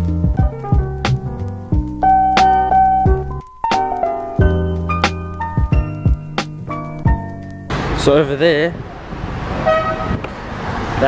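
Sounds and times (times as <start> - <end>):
city traffic noise: 2.5 - 11.0
car horn toot: 9.6 - 10.2.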